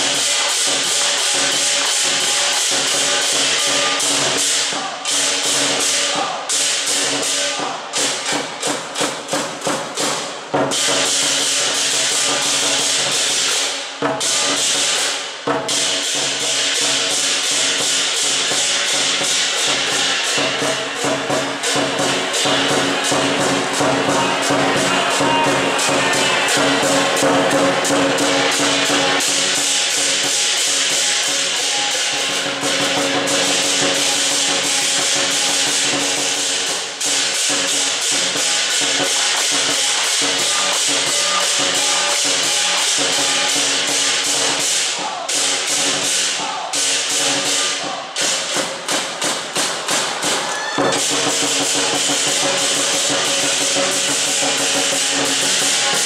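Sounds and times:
cymbals clashing: 0.0s - 56.0s
drum beating fast: 0.0s - 56.0s
gong ringing: 19.7s - 29.2s.

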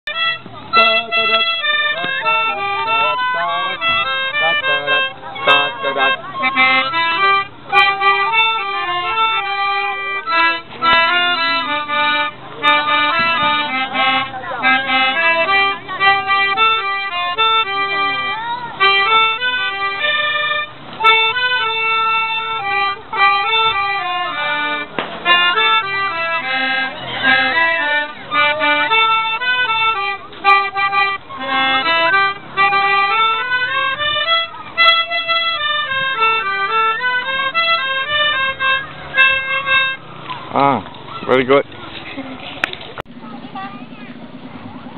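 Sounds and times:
melodicas and recorder playing: 0.1s - 41.2s.

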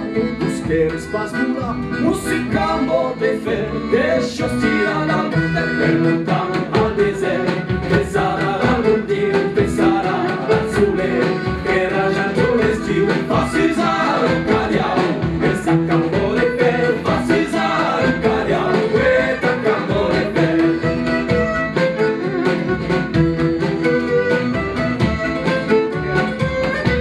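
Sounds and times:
accordion: 0.0s - 27.0s
fiddle: 0.0s - 27.0s
bass drum beating: 0.1s - 3.0s, 4.4s - 27.0s
voices singing together: 2.0s - 21.4s
stick drum: 4.4s - 27.0s.

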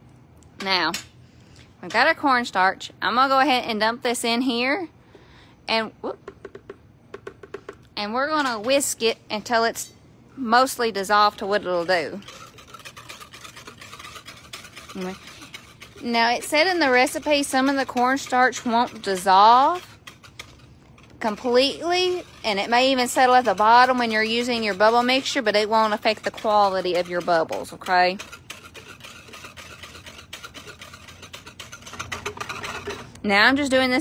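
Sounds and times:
whisk scraping in plastic pitcher: 6.4s - 9.8s, 10.6s - 33.8s
liquid swishing: 10.7s - 33.2s.

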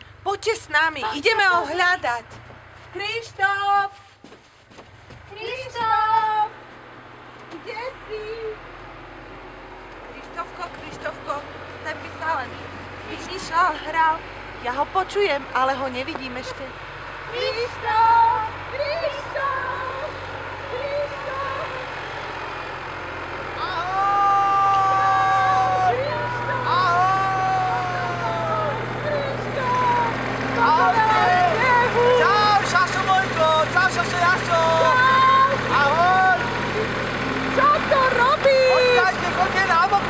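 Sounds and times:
front loader engine humming: 0.0s - 40.0s
long shouted calls: 17.1s - 39.8s.

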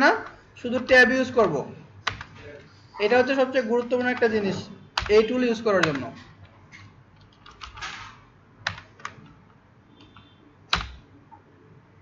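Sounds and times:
keyboard typing: 0.0s - 11.4s.

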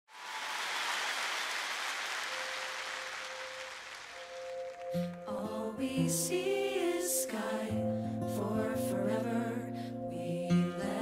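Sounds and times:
theatre audience applauding: 0.1s - 5.3s.

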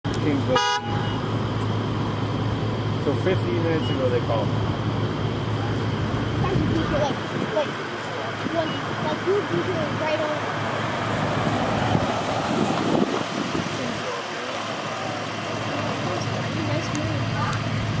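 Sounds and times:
vehicle engine hum: 0.0s - 18.0s
distant indistinct voices: 0.2s - 18.0s
vehicle horn blast: 0.5s - 1.3s.

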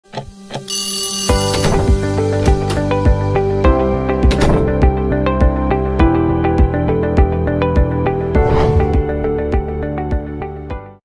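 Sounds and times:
alarm clock bell ringing: 0.7s - 1.8s.

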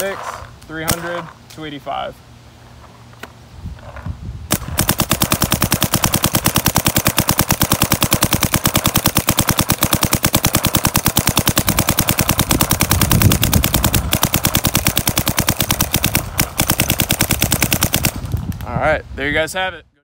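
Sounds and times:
paintball marker rapid fire: 4.5s - 18.7s.

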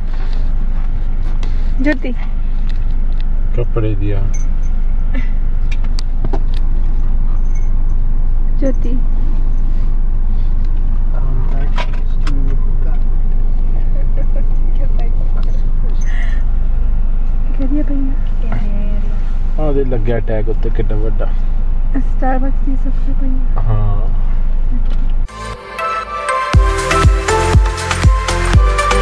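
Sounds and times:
low rumble inside car cabin: 0.0s - 25.3s.

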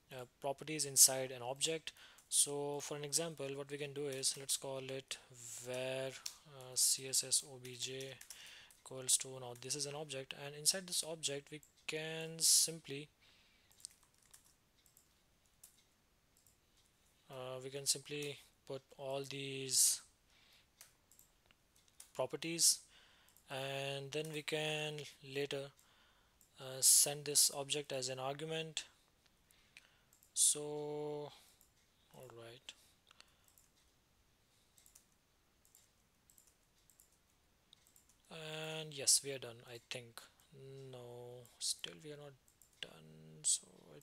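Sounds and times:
computer keyboard clicks: 7.6s - 8.8s, 13.7s - 16.6s, 34.8s - 38.2s.

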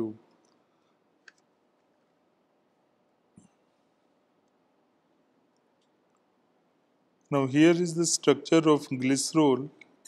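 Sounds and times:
person speaking: 7.3s - 10.0s.

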